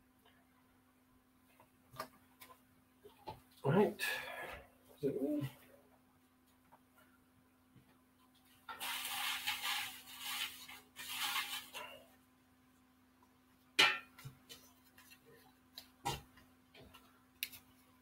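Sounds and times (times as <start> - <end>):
paper tickets rustling in metal pot: 8.7 - 12.0.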